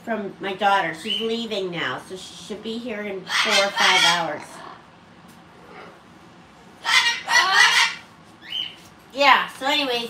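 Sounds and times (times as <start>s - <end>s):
parrot calling loudly: 3.2s - 4.9s, 6.8s - 8.9s.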